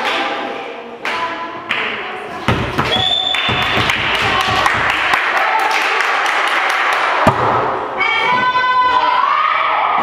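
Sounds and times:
volleyball strike: 2.4s - 5.2s, 7.2s - 7.8s.

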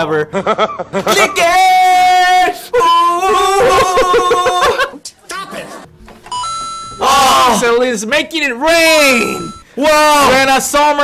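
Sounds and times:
laughter: 0.3s - 1.4s, 3.5s - 5.8s
electronic chime: 6.3s - 7.1s, 9.2s - 9.7s.

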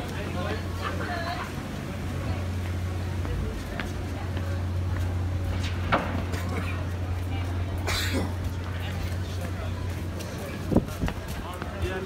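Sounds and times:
indistinct voices of passers-by: 0.0s - 12.0s.

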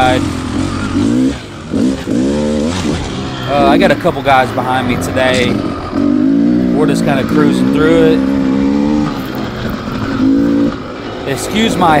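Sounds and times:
dirt bike engine revving: 0.0s - 12.0s.

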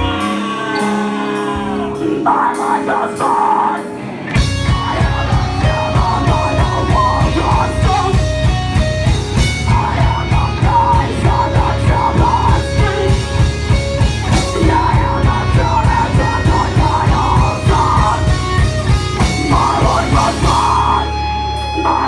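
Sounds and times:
bass guitar: 0.0s - 22.0s
electric guitar: 0.0s - 22.0s
pounding drum kit: 4.3s - 22.0s.

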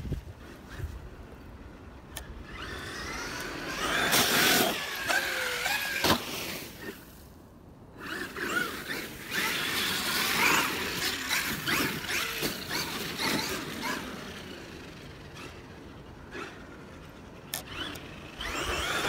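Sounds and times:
tyres on snow and dirt: 0.0s - 19.0s
electric motor whining: 2.2s - 6.0s, 8.0s - 16.8s, 17.5s - 19.0s.

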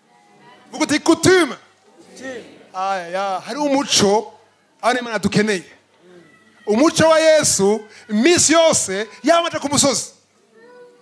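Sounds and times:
man's drawn-out amplified exclamation: 6.7s - 10.2s.

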